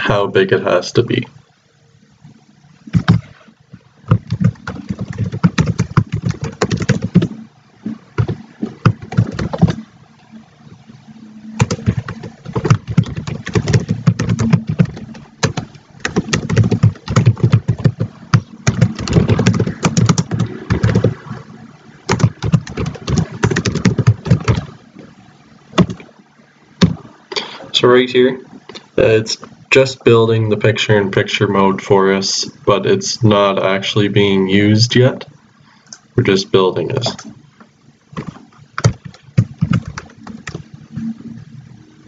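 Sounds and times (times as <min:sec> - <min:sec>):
computer keyboard typing: 0:02.9 - 0:03.3, 0:04.1 - 0:07.4, 0:08.2 - 0:09.8, 0:11.6 - 0:21.2, 0:22.1 - 0:24.7, 0:25.8 - 0:26.0, 0:38.2 - 0:40.6.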